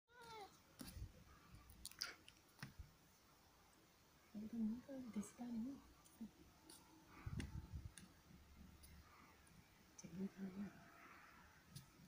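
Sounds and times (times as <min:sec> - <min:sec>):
cat meowing: 0:00.1 - 0:00.6.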